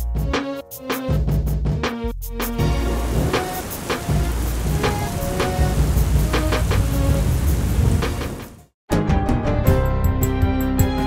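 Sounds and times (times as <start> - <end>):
music: 0.0 - 11.0
heavy rain: 2.6 - 8.7
thunder: 3.0 - 8.6.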